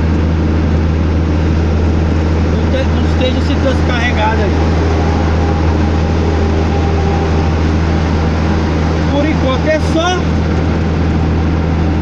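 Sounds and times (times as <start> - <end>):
faint steady whine: 0.0 - 12.0
truck diesel engine drone: 0.0 - 12.0
tyre road rush: 0.0 - 12.0.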